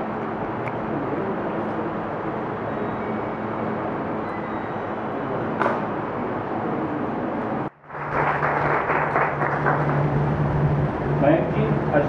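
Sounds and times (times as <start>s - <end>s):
crowded room ambience: 0.0s - 12.0s
low hum: 0.0s - 12.0s.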